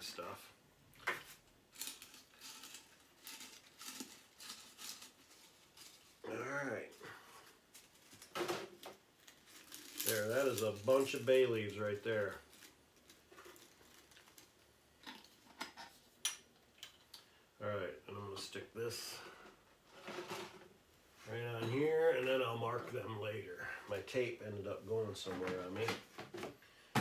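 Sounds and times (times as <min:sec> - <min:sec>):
man talking: 0:00.0 - 0:00.5, 0:06.2 - 0:07.0, 0:10.0 - 0:12.5, 0:17.6 - 0:19.4, 0:21.2 - 0:26.0
spice packages rustling: 0:01.2 - 0:06.2, 0:07.3 - 0:15.4.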